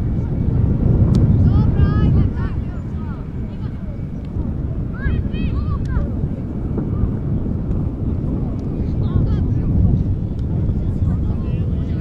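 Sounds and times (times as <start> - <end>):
wind buffeting microphone: 0.0 - 12.0
faint shouting voices: 1.4 - 7.5.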